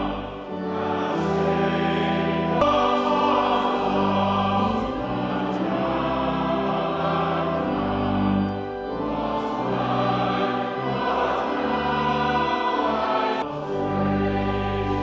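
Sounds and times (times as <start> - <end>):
church organ playing chords: 0.0 - 15.0
congregation singing: 0.0 - 15.0.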